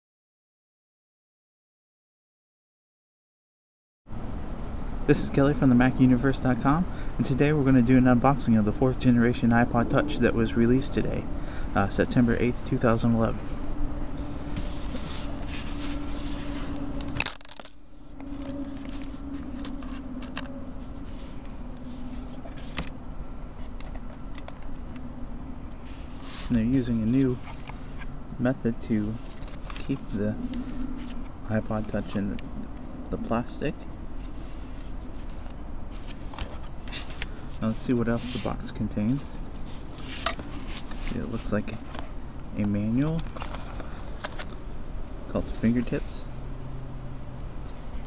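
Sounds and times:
low background rumble: 4.1 - 48.0
steady low hum: 4.1 - 48.0.

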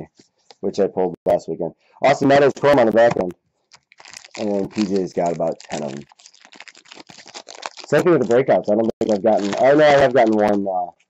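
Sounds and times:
person speaking: 0.0 - 3.4, 4.3 - 6.1, 7.7 - 10.9
foil wrapper crinkling: 3.6 - 10.7.

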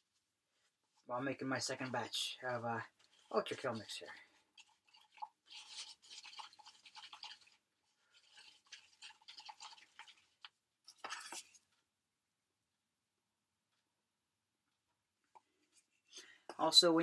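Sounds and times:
stick scraping in mixing cup: 1.8 - 11.7.

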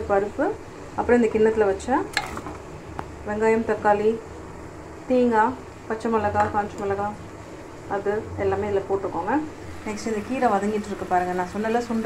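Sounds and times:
woman talking: 0.0 - 2.2, 3.2 - 4.2, 5.1 - 7.2, 7.9 - 12.0.

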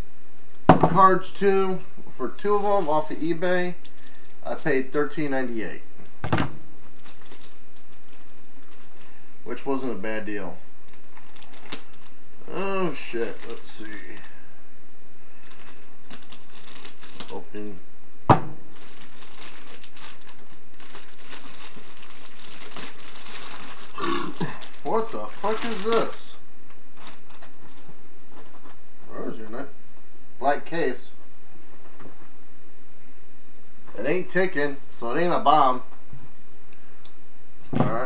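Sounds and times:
steady background hiss: 0.0 - 38.0
packaging crinkling: 6.8 - 9.2, 10.8 - 12.2, 12.8 - 14.4, 15.3 - 17.7, 18.6 - 28.8.

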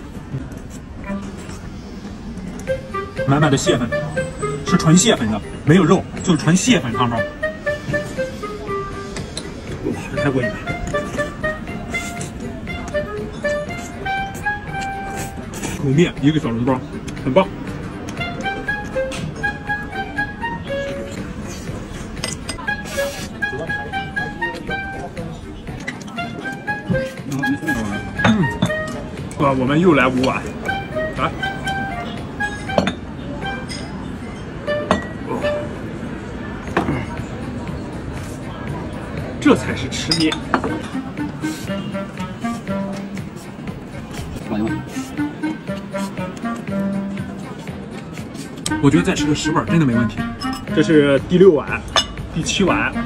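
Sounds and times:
background music: 0.0 - 53.0
light background melody: 0.0 - 53.0
ceramic bowls clinking: 26.9 - 35.7, 40.0 - 41.1, 50.0 - 50.9, 51.8 - 52.2.

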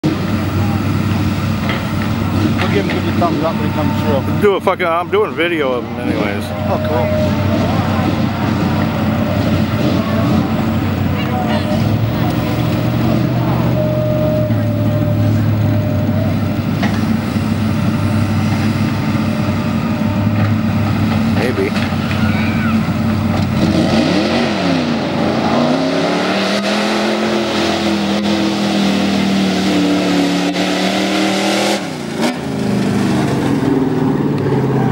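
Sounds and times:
truck engine revving: 0.0 - 34.9.

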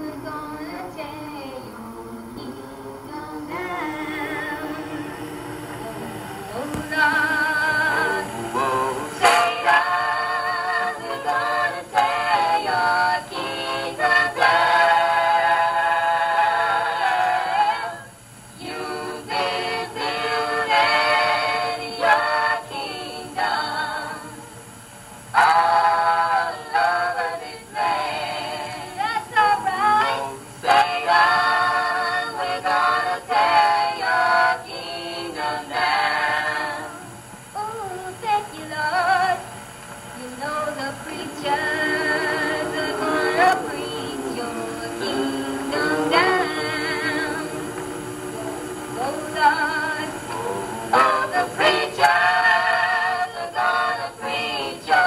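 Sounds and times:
group gospel singing: 0.0 - 39.5, 40.2 - 55.0.

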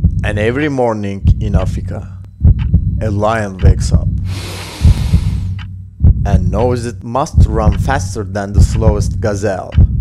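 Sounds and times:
low throbbing pulse: 0.0 - 10.0
rush of hiss: 4.3 - 5.5.

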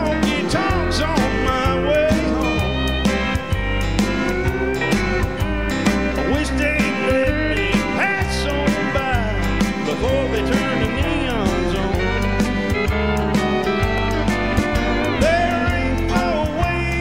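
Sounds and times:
drums keeping steady beat: 0.0 - 17.0
electric guitar bending notes: 0.0 - 17.0
keyboard: 0.0 - 17.0.

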